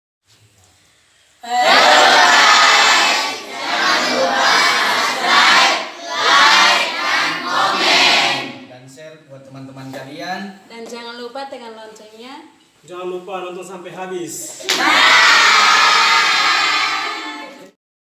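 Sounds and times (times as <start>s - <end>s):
children shouting in unison: 1.4s - 8.4s, 14.7s - 17.7s.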